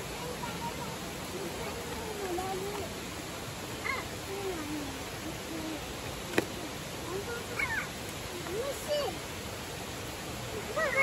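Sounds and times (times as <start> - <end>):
stream running over stones: 0.0 - 11.0.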